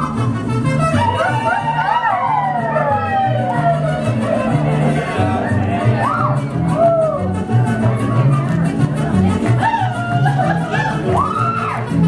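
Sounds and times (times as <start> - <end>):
music with repeating bass line: 0.0 - 12.0.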